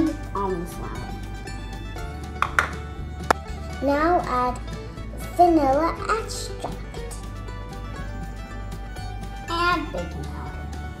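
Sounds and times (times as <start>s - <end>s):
light background music: 0.0s - 11.0s
plastic bowl tapping mixing bowl: 2.4s - 3.4s.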